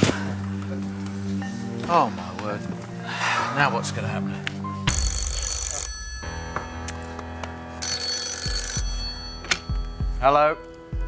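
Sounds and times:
tense background music with drone: 0:00.0 - 0:05.3, 0:05.9 - 0:11.0
telephone ringing: 0:04.9 - 0:07.0, 0:07.8 - 0:10.1.

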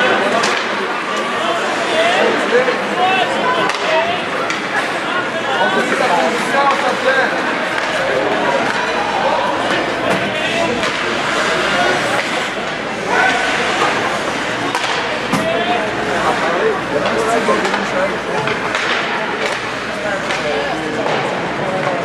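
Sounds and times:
spectators chattering: 0:00.0 - 0:22.0
hockey stick and puck clacks: 0:00.2 - 0:01.3, 0:03.6 - 0:05.0, 0:05.8 - 0:15.5, 0:17.0 - 0:22.0.

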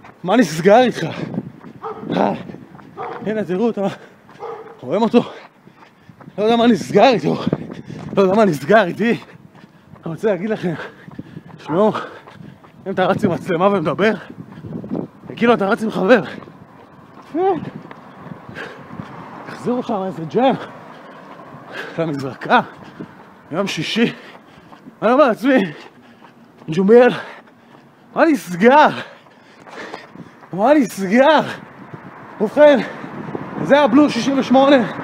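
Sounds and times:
dog barking: 0:01.8 - 0:02.2, 0:03.0 - 0:03.3, 0:04.4 - 0:04.8.

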